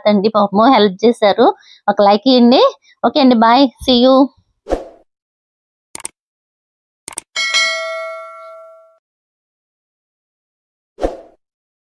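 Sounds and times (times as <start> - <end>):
mouse clicks: 6.0 - 6.2, 7.1 - 7.3
bell ding: 7.4 - 9.0.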